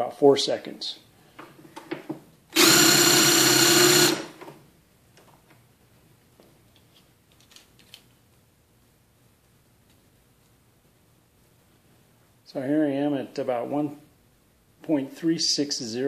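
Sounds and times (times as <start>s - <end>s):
nut driver whining: 2.5s - 4.6s.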